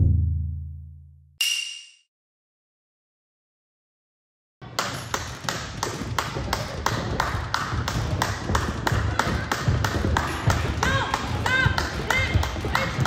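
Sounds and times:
hand clapping: 0:04.7 - 0:13.0.

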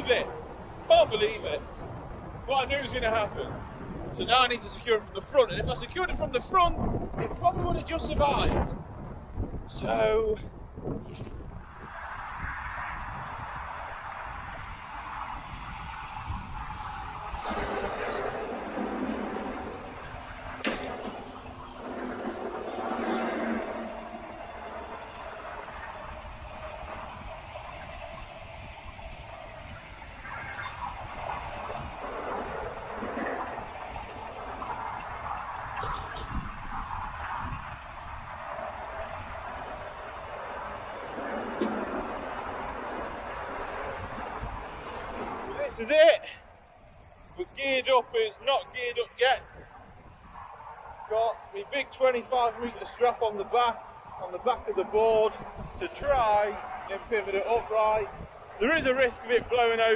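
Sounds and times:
lorries passing: 0:00.0 - 0:09.6, 0:10.5 - 0:59.9
motorway traffic passing: 0:00.0 - 0:59.9
wind buffeting microphone: 0:00.0 - 0:59.9.

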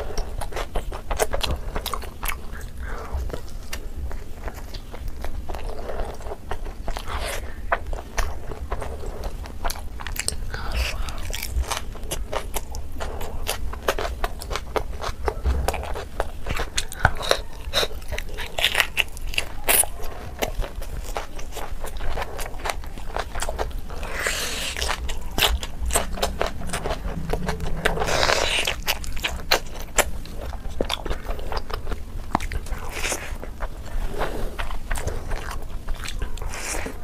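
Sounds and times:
close-miked chewing and crunching: 0:00.0 - 0:37.0.

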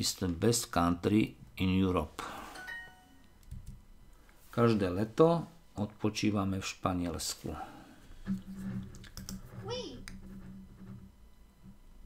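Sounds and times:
steady low hum: 0:00.0 - 0:12.0
computer mouse clicks: 0:09.0 - 0:09.4.

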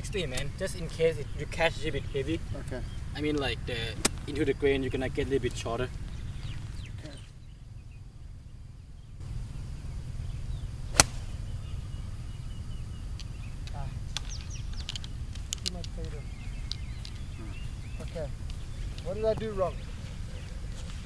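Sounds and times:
low rumble: 0:05.9 - 0:21.0
golf club striking ball: 0:10.5 - 0:11.7.

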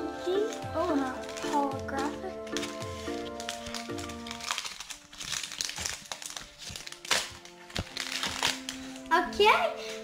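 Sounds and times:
trading cards rustling: 0:00.0 - 0:09.1
background music: 0:00.0 - 0:10.0.

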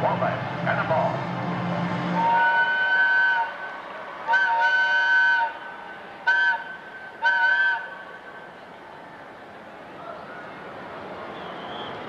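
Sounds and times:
train whistle blasts: 0:02.2 - 0:03.6, 0:04.3 - 0:05.6, 0:06.3 - 0:07.9.

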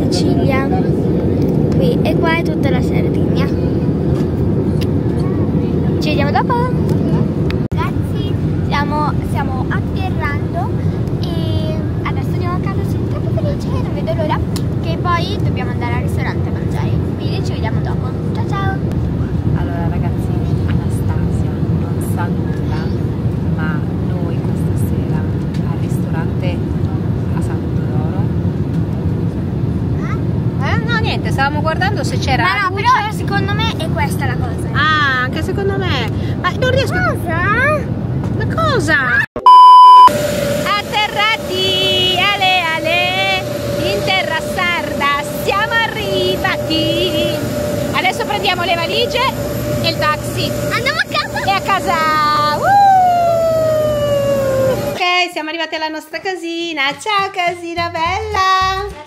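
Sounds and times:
steady whine: 0:00.0 - 0:34.6, 0:39.3 - 0:55.0
airliner cabin rumble: 0:00.0 - 0:34.7, 0:40.0 - 0:55.0
muffled passenger voices: 0:00.0 - 0:55.1
loud high beep: 0:39.4 - 0:42.4.

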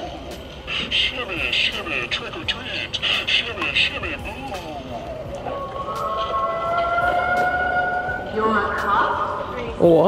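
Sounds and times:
electronic ghost wail: 0:05.4 - 0:10.0.

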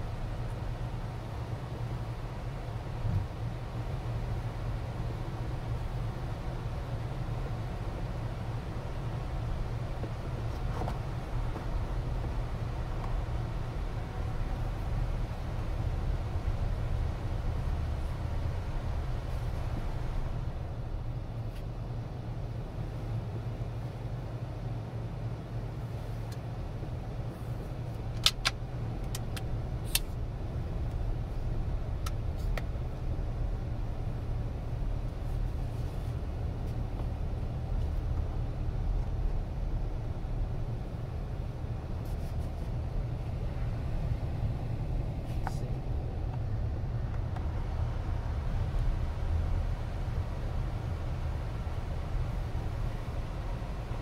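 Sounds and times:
air-conditioning fan: 0:00.0 - 0:54.0
vehicle cabin low rumble: 0:00.0 - 0:54.0.

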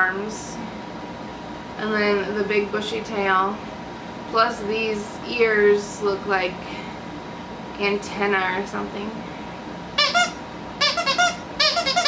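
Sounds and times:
dog toy squeaks: 0:10.0 - 0:12.0.

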